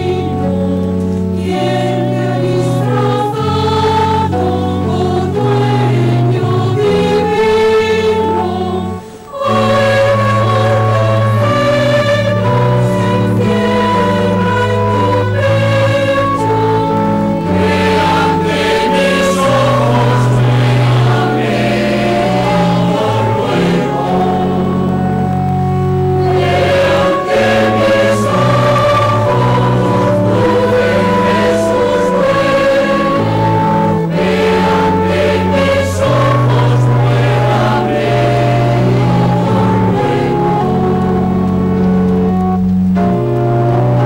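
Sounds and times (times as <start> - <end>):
choir singing a hymn: 0.0 - 44.0.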